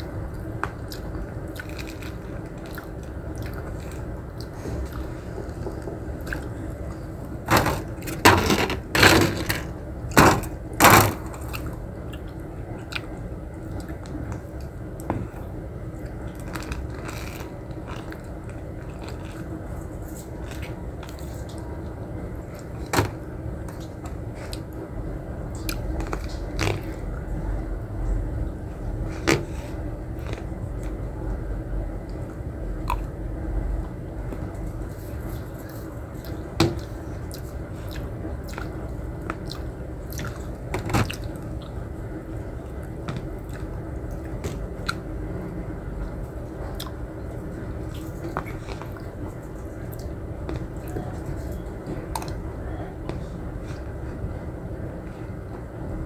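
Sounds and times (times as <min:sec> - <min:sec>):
person chewing food: 0:00.0 - 0:08.0, 0:11.3 - 0:22.9, 0:23.5 - 0:24.8, 0:25.5 - 0:27.3, 0:33.8 - 0:45.1, 0:46.1 - 0:54.3
faint steady hum: 0:00.0 - 0:56.0.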